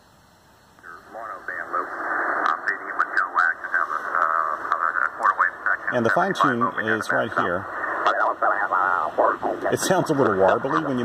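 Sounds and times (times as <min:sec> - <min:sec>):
radio background noise: 0:00.8 - 0:11.0
thin radio voice: 0:00.8 - 0:11.0.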